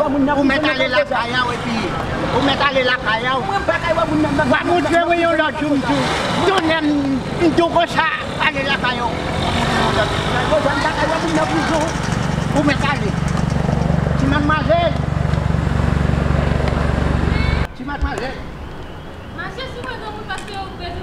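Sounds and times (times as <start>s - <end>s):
people talking: 0.0s - 13.2s, 19.4s - 21.0s
vehicle engine running: 0.0s - 17.7s.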